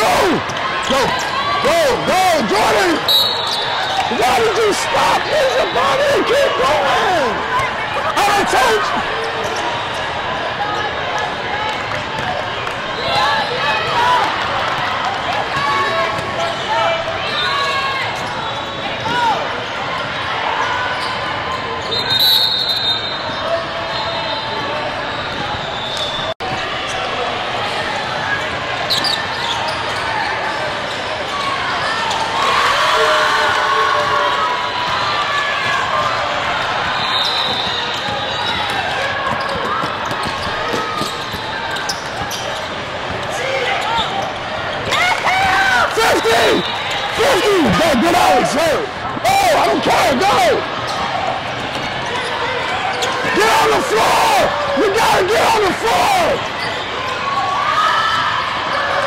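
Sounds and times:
crowd chatter: 0.0 - 59.0
people shouting: 44.9 - 50.7, 53.3 - 56.5.

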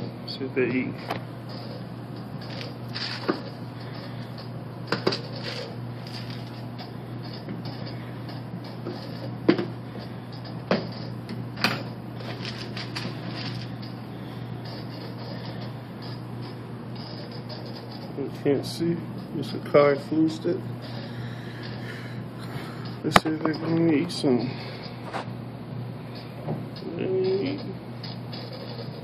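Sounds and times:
aquarium equipment humming: 0.0 - 29.0.

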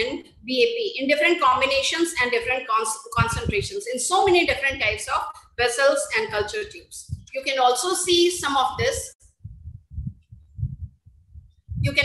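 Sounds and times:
low muffled thumps: 3.2 - 3.8, 6.2 - 7.4, 8.8 - 12.0.

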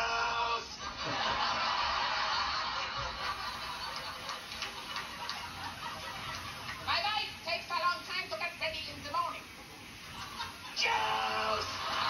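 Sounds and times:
studio audience laughing: 0.5 - 6.9, 9.9 - 12.0.

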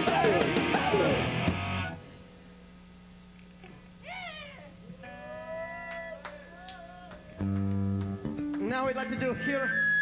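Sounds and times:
ringing guitar tones bending: 5.0 - 10.0.

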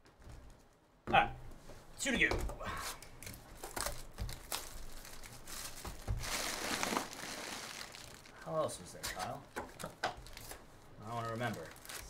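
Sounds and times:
cardboard box crinkling and scraping: 3.8 - 8.3.

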